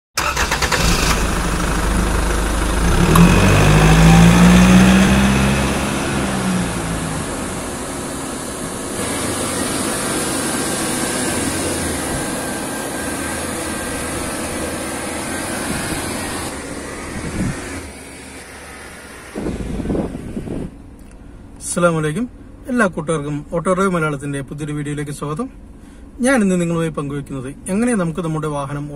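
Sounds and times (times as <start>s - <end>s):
vehicle engine running: 0.2s - 24.9s.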